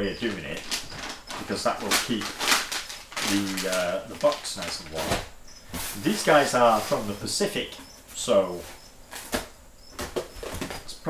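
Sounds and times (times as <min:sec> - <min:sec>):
packaging rustling: 0:00.2 - 0:07.1.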